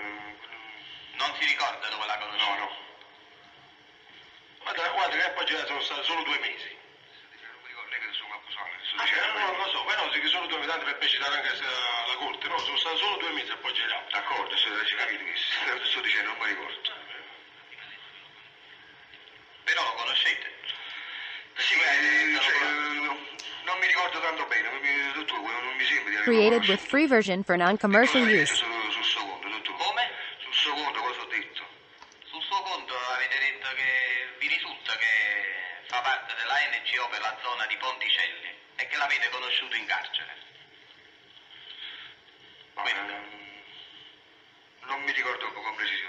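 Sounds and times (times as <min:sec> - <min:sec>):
person talking: 0:26.2 - 0:28.6.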